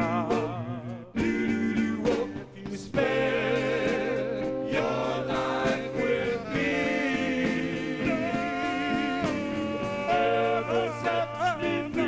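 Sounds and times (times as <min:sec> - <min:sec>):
male vocal group singing harmony: 0:00.0 - 0:12.0.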